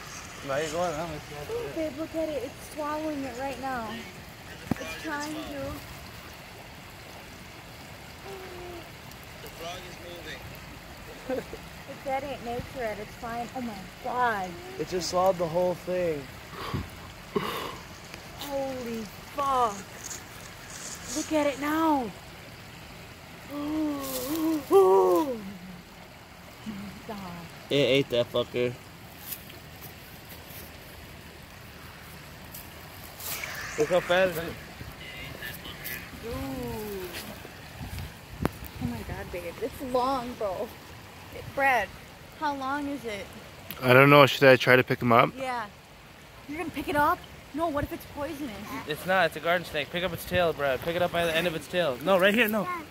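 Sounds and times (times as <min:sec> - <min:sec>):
faint crackles: 0:00.0 - 0:06.1, 0:16.5 - 0:22.3, 0:23.5 - 0:25.8, 0:29.1 - 0:39.6
faint hiss: 0:00.0 - 0:52.9
rushing water: 0:00.0 - 0:52.9
person humming: 0:08.2 - 0:08.9, 0:23.5 - 0:25.8.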